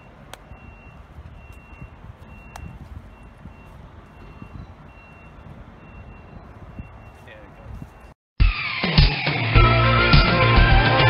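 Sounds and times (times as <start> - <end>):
reversing beeper: 0.0 - 8.2.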